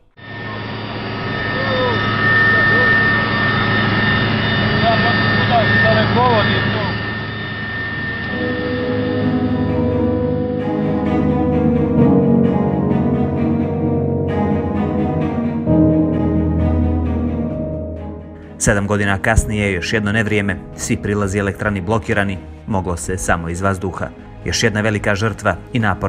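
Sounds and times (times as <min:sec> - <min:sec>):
helicopter engine whine and drone: 0:00.0 - 0:18.6
low bowed-string music: 0:08.2 - 0:26.0.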